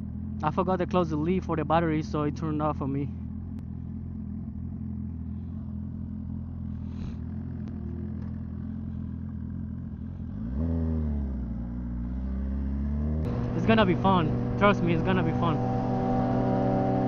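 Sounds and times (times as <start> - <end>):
motorcycle engine idling and revving: 0.0 - 17.0.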